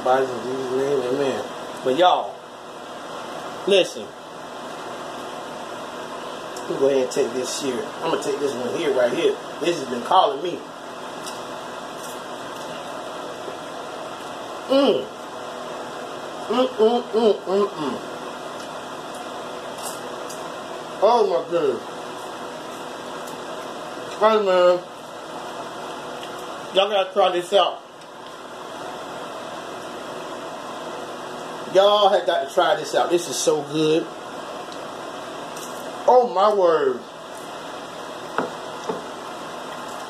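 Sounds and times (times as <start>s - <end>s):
fan or air conditioner hiss: 0.0s - 40.0s.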